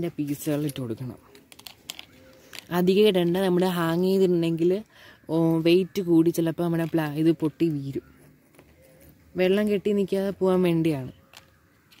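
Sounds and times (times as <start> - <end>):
person speaking: 0.0 - 11.6.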